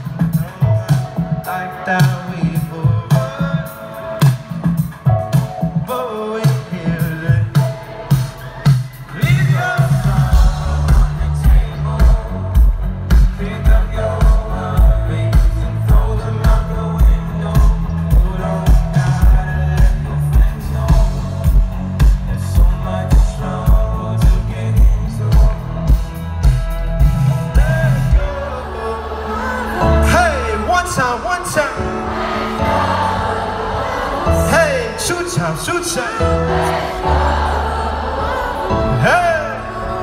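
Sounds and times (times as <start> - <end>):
loud pop music over speakers: 0.0 - 40.0
heavy bass line: 6.7 - 40.0.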